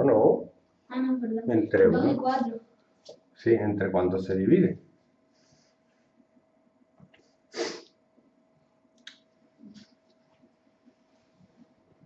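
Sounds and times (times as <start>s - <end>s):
person's sharp breathy burst: 7.5s - 7.9s.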